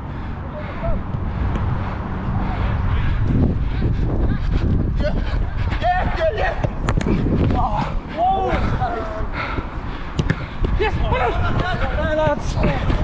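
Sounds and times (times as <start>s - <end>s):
wind rumble on microphone: 0.0s - 13.0s
players shouting: 4.4s - 13.0s
football being kicked: 10.2s - 10.4s.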